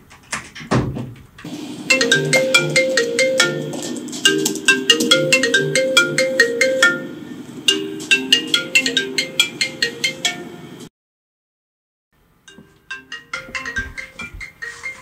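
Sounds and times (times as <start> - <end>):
phone ringtone plucked notes: 1.8 - 10.7, 12.5 - 15.0.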